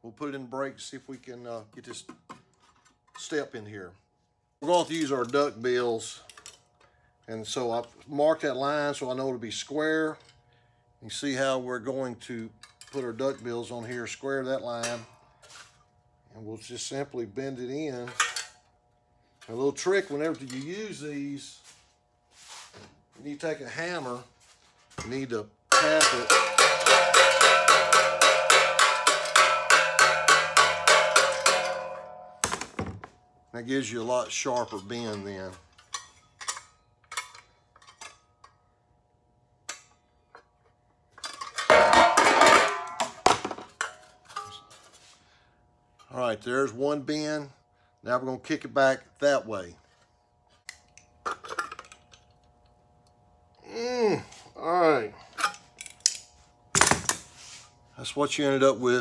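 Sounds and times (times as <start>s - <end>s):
sharp metallic clank: 25.7s - 32.6s, 41.5s - 44.8s
sheet metal panel clattering: 25.8s - 32.1s.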